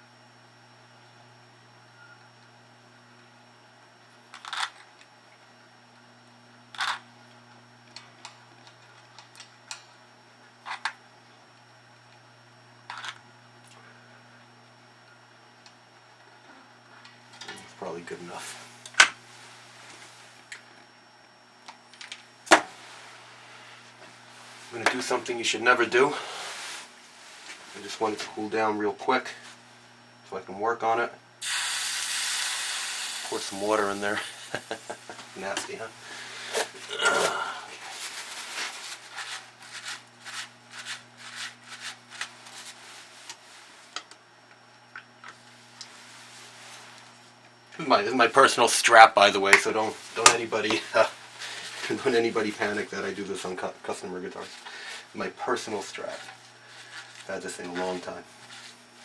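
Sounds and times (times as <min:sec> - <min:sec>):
water sizzling on hot metal: 0:31.4 - 0:35.2
solder flux crackling: 0:31.4 - 0:35.8.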